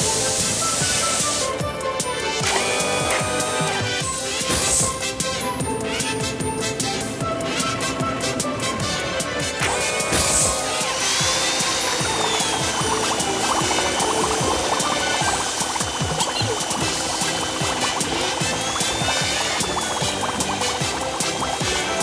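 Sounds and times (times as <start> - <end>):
background music: 0.0 - 22.0
cartoon bubbling and popping: 9.6 - 22.0
spray burst: 9.6 - 22.0.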